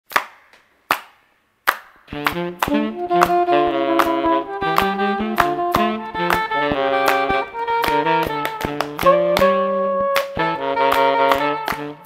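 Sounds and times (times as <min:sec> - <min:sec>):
sharp hand claps: 0:00.1 - 0:12.0.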